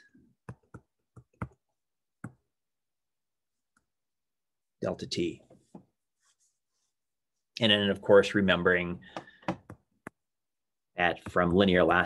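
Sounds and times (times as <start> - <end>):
stylus tapping on tablet screen: 0.4 - 2.5.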